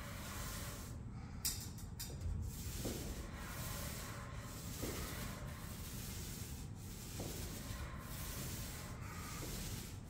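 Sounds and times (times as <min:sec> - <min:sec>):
paint sprayer hissing: 0:02.6 - 0:10.0.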